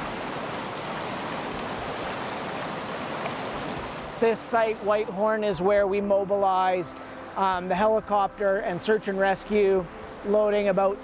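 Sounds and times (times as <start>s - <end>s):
creek rushing: 0.0s - 11.0s.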